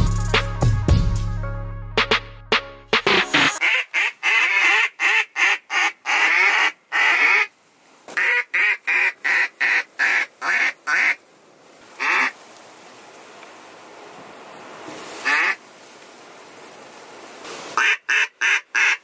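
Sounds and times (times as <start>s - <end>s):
duck call quacks: 3.3s - 7.5s, 8.2s - 11.2s, 12.0s - 12.3s, 15.2s - 15.6s, 17.8s - 19.0s.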